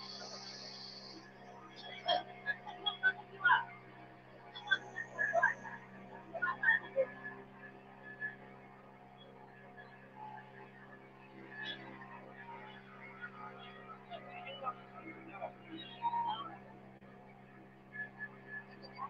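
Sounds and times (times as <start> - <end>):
boat engine droning: 0.0 - 15.8
faint voices talking: 0.0 - 19.0.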